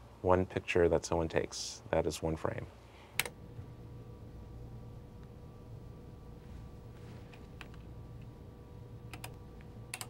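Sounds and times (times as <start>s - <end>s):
steady electrical hum: 0.0s - 10.0s
console buttons clicking: 9.1s - 10.0s.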